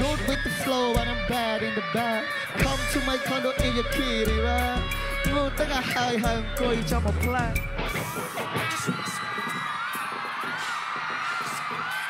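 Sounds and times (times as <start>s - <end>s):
concert crowd cheering and screaming: 0.0s - 12.0s.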